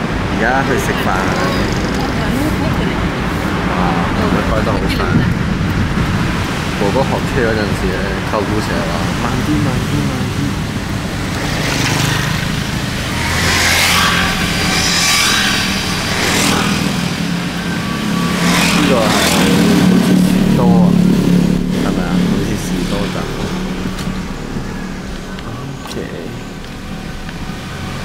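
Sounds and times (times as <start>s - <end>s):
car engine hum and road noise: 0.0s - 28.0s
vehicles whooshing by: 0.0s - 28.0s.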